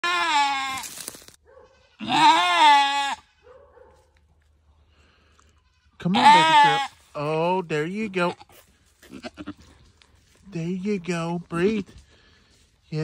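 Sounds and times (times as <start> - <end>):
faint short goat bleat: 0.0 - 0.9, 1.8 - 3.3, 5.6 - 7.0, 9.0 - 9.6
goat bleating loudly: 0.0 - 1.1, 1.7 - 3.4, 5.5 - 7.2, 8.0 - 9.7.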